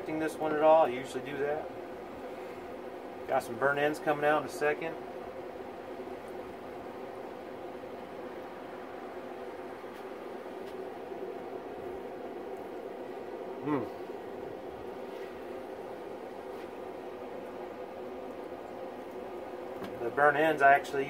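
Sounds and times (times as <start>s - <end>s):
mechanical hum: 0.0s - 21.0s
man humming mmm: 13.6s - 14.1s.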